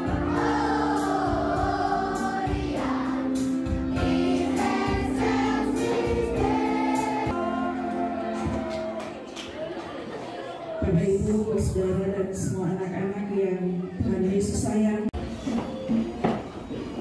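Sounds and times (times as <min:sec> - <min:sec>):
held keyboard chords: 0:00.0 - 0:09.3
children singing in unison: 0:00.0 - 0:09.4.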